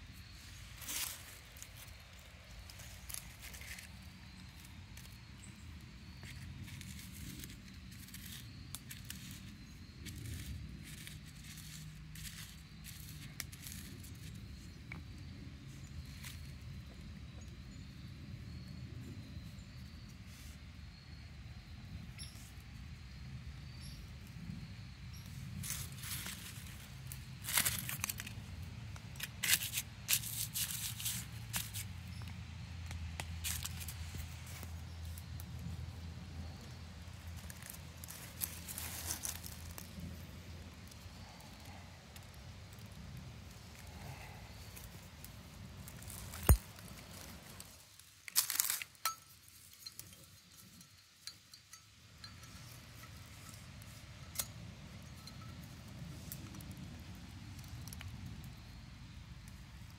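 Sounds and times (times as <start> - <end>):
small hard objects clinking: 0.2 - 15.0, 25.2 - 35.8, 36.4 - 45.0, 45.8 - 56.6.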